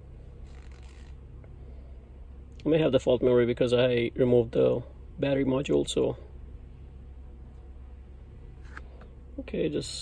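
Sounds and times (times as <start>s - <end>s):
low hum inside car: 0.0s - 10.0s
handling rustle: 0.2s - 1.5s.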